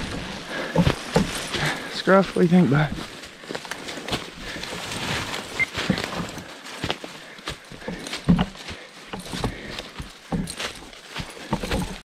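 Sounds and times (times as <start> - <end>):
crunching footsteps: 0.0 - 12.0.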